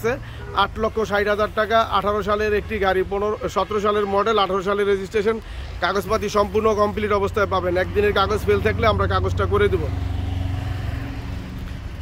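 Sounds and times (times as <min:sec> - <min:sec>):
man's voice: 0:00.0 - 0:09.9.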